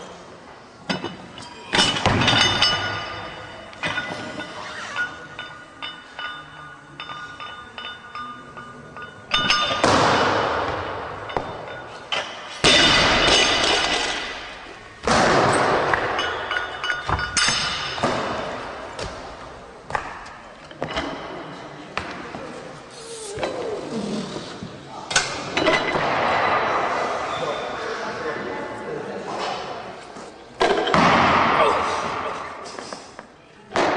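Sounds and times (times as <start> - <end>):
loud ringing crashes: 12.6 - 14.5.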